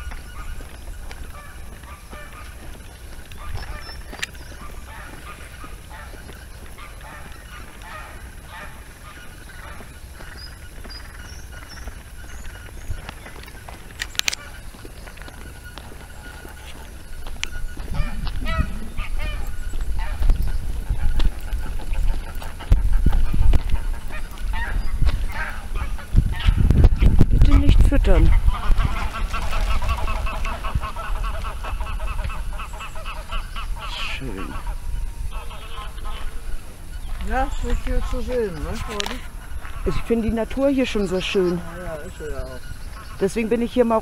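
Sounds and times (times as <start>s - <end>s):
geese honking: 0.0s - 44.0s.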